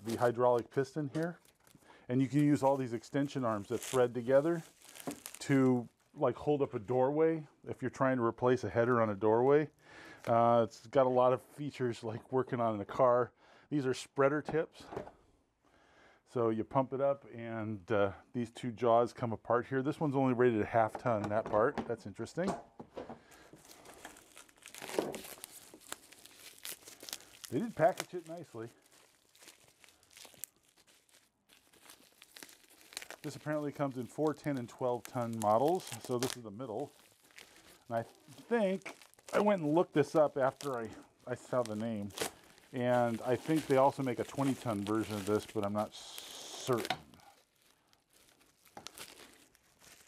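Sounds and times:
plastic packaging crinkling: 0.0 - 6.2, 23.3 - 50.0.

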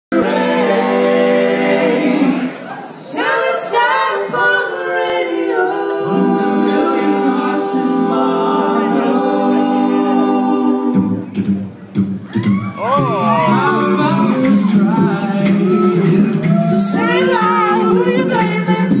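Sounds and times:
male voices singing a cappella: 3.2 - 11.5, 12.8 - 19.0
bass vocal line: 3.8 - 19.0.

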